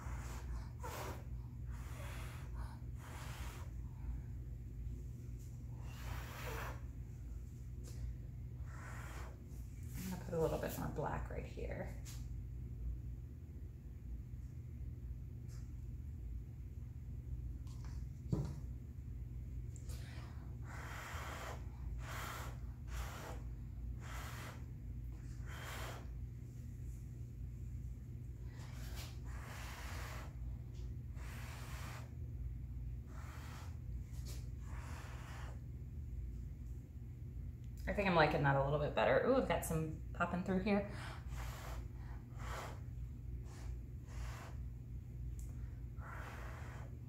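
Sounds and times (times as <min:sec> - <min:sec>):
steady low hum: 0:00.0 - 0:47.0.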